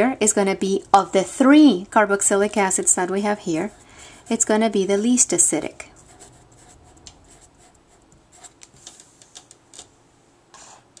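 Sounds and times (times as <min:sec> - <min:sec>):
marker scratching on paper: 0:06.0 - 0:09.0.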